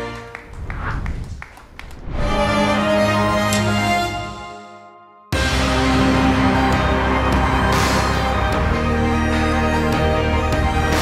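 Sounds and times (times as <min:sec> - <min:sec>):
music: 0:00.0 - 0:01.2, 0:02.0 - 0:11.0
scattered hand claps: 0:00.0 - 0:02.0.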